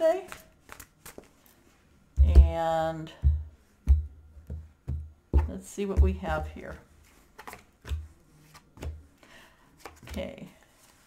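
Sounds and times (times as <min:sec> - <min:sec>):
cards tapping on a table: 0:08.8 - 0:09.0.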